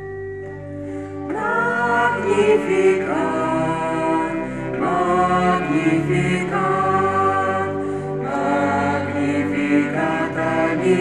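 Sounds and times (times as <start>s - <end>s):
choir singing slow held notes: 0.8s - 11.0s.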